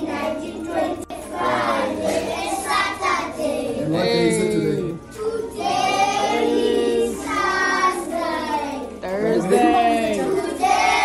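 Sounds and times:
children singing in unison: 0.0 - 4.0, 4.8 - 11.0.

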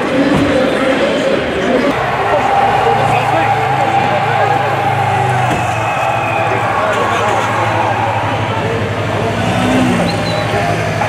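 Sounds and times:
crowd talking and calling out: 0.0 - 11.0
vehicle engines humming: 1.6 - 11.0.

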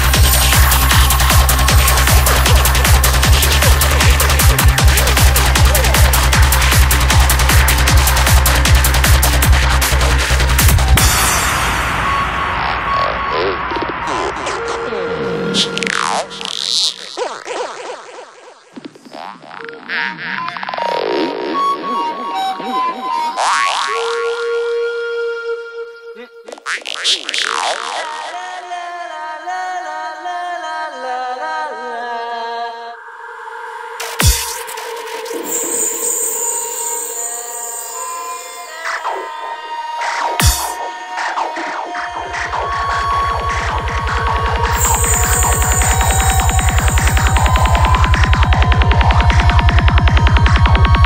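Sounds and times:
low bass pulse: 0.0 - 17.0, 41.8 - 51.0
electronic synth music: 0.0 - 28.5, 34.0 - 51.0
held synth tones: 34.0 - 49.6.

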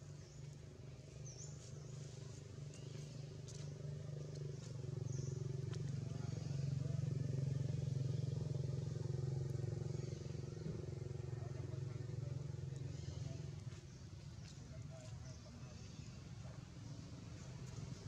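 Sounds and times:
vehicle engine humming: 0.0 - 18.0.

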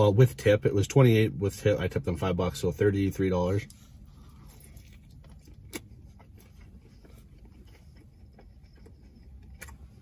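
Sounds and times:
low steady rumble: 0.0 - 10.0
mouth clicks and smacks chewing: 4.4 - 10.0.

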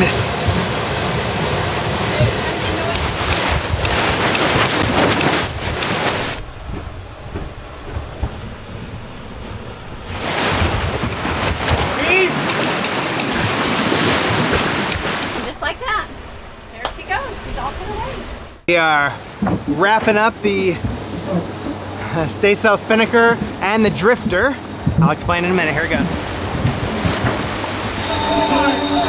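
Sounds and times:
water rushing past hulls: 0.0 - 29.0
wind buffeting microphone: 23.3 - 28.0.

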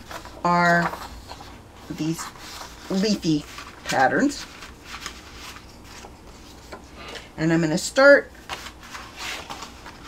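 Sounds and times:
paper rustling: 0.0 - 7.2, 8.4 - 10.0
low steady hum: 0.0 - 10.0.

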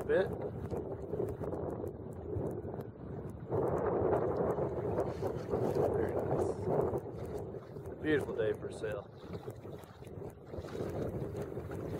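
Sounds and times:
water along boat hull: 0.0 - 11.9
wind on microphone: 0.0 - 11.9.

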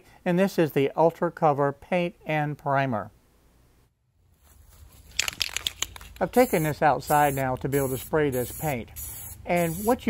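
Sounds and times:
spray paint can rattling: 4.8 - 10.0
aerosol spray hissing: 6.1 - 10.0.

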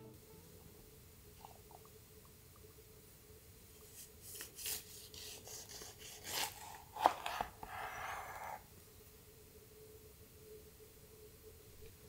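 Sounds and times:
knife cutting through orange: 4.3 - 8.6
knife scraping cutting board: 4.6 - 8.6.

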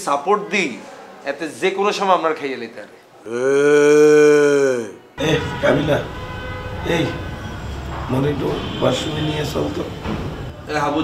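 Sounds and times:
man speaking: 3.3 - 6.2, 6.8 - 7.2.

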